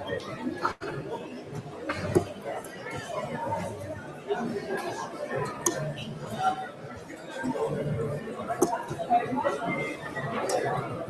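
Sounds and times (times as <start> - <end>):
chatter of many people: 0.0 - 11.0.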